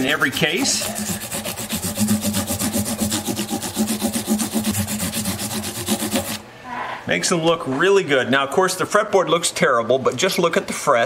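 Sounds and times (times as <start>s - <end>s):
sandpaper rubbing on metal frets: 0.0s - 6.4s.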